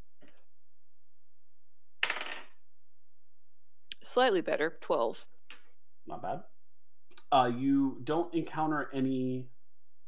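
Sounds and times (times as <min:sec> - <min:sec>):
dice clattering on hard surface: 0:02.0 - 0:02.6.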